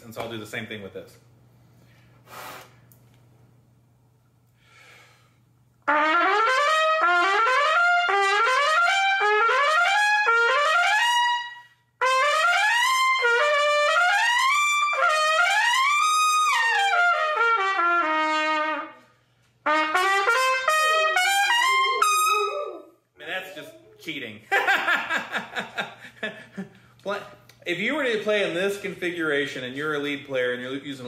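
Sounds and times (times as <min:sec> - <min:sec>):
trumpet playing runs: 0:05.8 - 0:22.8.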